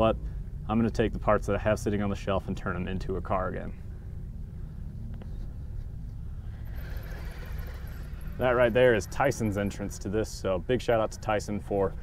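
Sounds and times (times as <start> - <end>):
rc car drivetrain whirring: 6.3 - 10.4.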